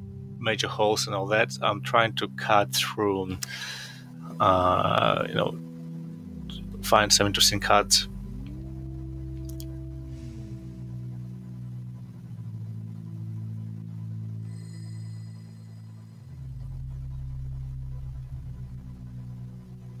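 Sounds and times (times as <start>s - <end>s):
ambient synth pad: 0.0s - 20.0s
high ringing tone: 14.4s - 16.9s.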